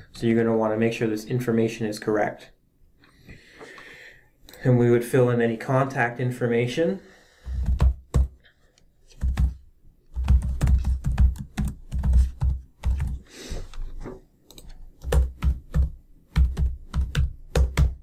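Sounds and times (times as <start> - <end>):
computer keyboard typing: 9.2 - 13.2, 14.5 - 18.0.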